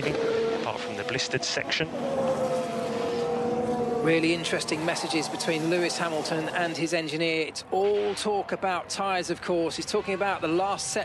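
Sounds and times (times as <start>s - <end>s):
race car engine at high revs: 0.0s - 8.9s.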